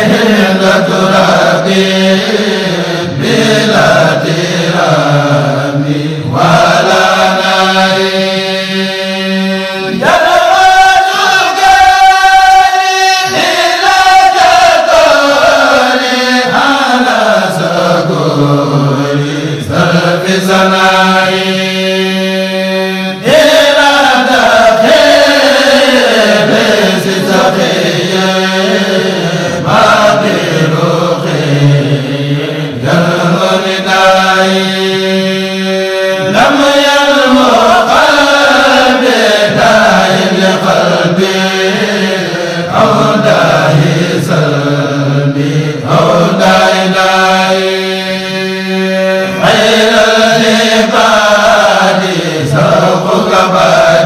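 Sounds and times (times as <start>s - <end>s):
person chanting held notes: 0.0s - 54.0s.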